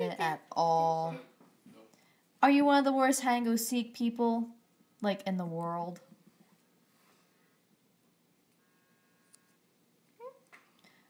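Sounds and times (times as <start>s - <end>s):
faint brief tone: 8.6s - 9.6s.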